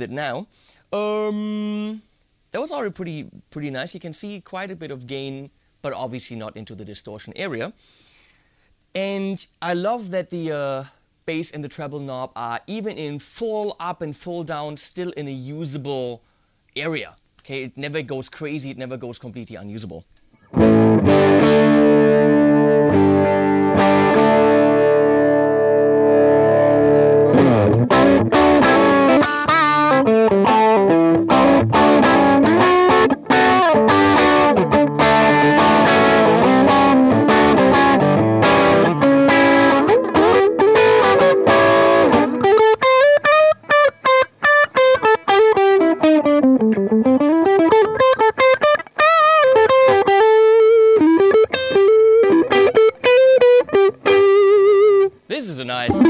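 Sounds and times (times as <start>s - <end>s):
overdriven electric guitar playing: 20.4s - 55.2s.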